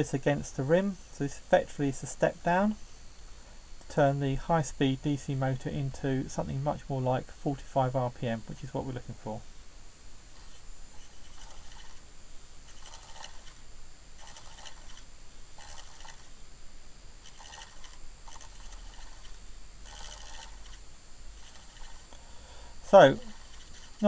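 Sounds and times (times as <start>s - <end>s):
low steady hum: 0.0s - 24.0s
small motor driving platter: 12.7s - 13.6s, 14.2s - 16.3s, 17.2s - 20.8s, 21.4s - 22.2s.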